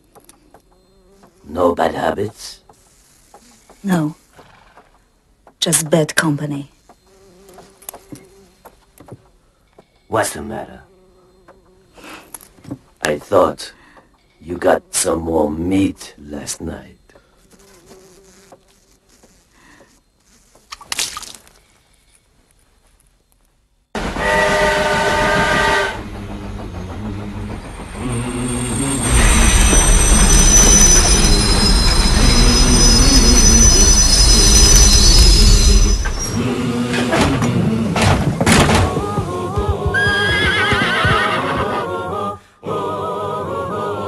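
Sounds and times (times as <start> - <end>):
fly buzzing: 0.0 - 5.1, 6.5 - 9.2, 10.4 - 12.6, 17.2 - 21.8
horse whinnying: 39.8 - 41.9.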